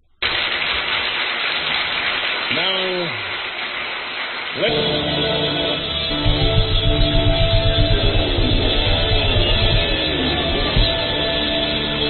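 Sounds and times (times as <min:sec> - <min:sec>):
loud steady hiss: 0:00.1 - 0:12.0.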